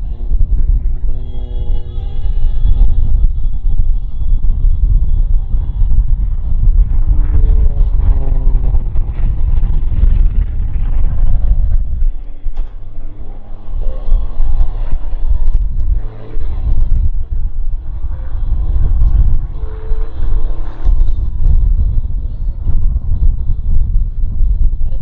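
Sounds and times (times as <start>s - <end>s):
plane engine and propeller droning: 0.0s - 25.0s
wind buffeting microphone: 0.0s - 25.0s.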